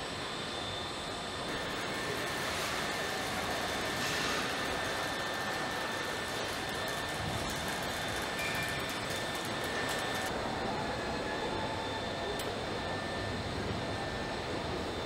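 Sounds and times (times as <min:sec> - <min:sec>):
assembly line machinery drone: 0:00.0 - 0:15.0
faint high whines: 0:00.0 - 0:15.0.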